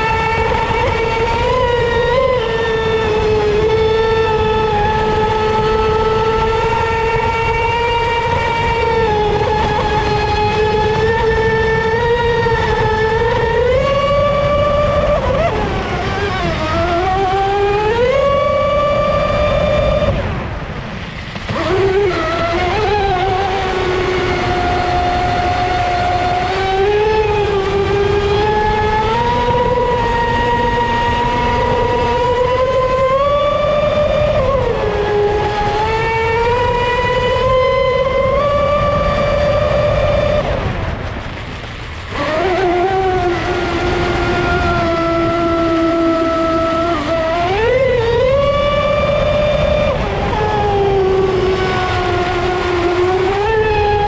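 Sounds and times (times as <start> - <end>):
electric motor whining: 0.0 - 54.0
rush of wind and water: 0.0 - 54.0.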